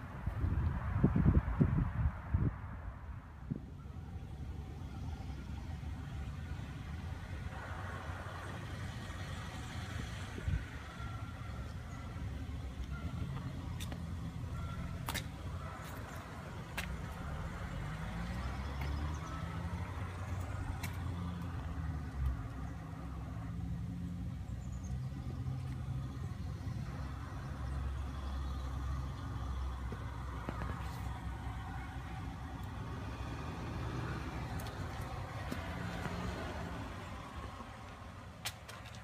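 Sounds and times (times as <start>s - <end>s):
low engine rumble: 0.0s - 39.0s.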